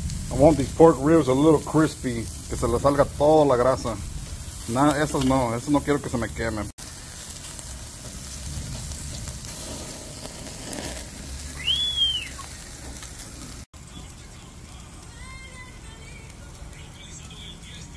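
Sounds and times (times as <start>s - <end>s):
meat sizzling on a grill: 0.0s - 17.9s
high chirp: 11.6s - 12.5s.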